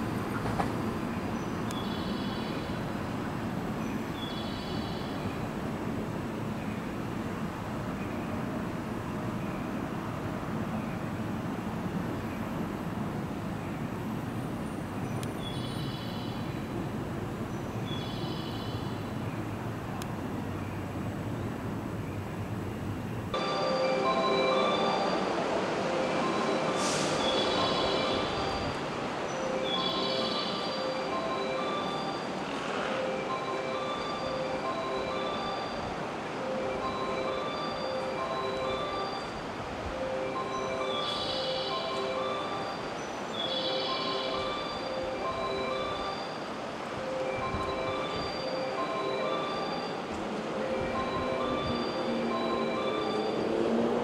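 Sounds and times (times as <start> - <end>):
electric train rumbling: 0.0 - 54.0
chime-like tune: 23.4 - 28.6.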